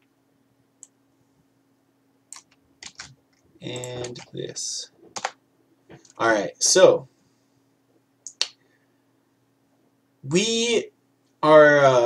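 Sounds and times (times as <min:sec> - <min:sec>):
faint low hum: 0:00.0 - 0:12.0
sharp computer clicks: 0:02.3 - 0:04.4, 0:05.1 - 0:05.4, 0:08.2 - 0:08.6.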